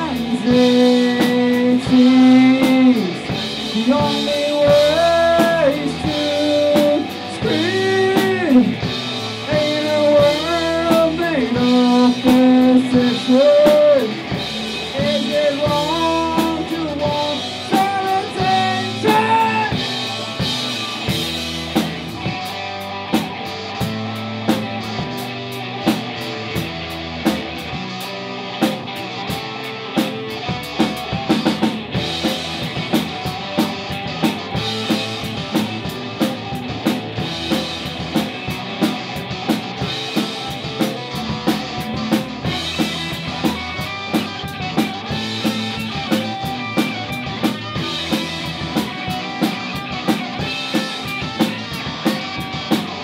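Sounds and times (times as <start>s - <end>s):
rock band playing: 0.0s - 53.0s
steady drum beat: 0.0s - 53.0s.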